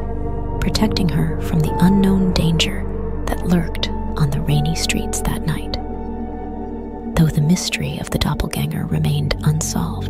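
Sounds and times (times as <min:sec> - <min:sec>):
background music with held tones: 0:00.0 - 0:10.0
narrator speaking: 0:00.6 - 0:05.9, 0:07.2 - 0:10.0.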